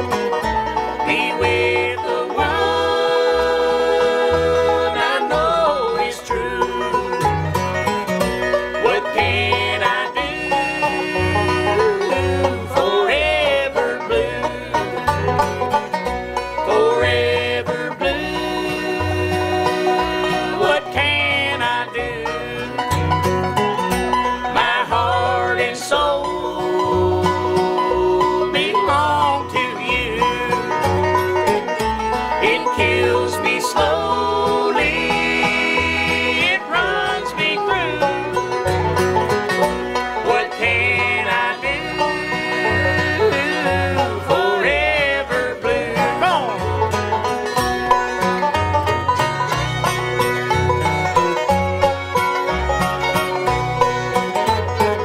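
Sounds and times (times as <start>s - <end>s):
banjo: 0.0s - 55.0s
bass line: 0.0s - 55.0s
fiddle-like sliding melody: 0.0s - 55.0s
guitar: 0.0s - 55.0s.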